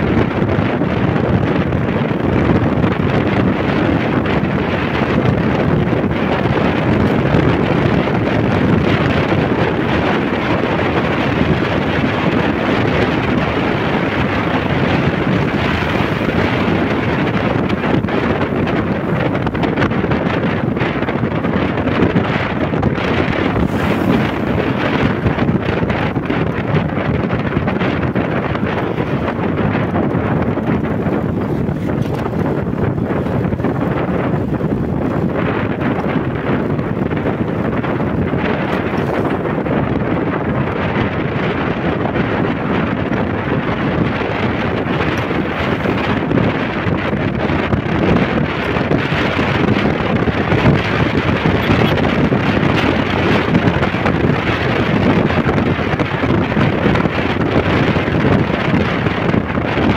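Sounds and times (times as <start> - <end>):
scooter riding rush: 0.0 - 59.9
wind buffeting microphone: 0.0 - 59.9.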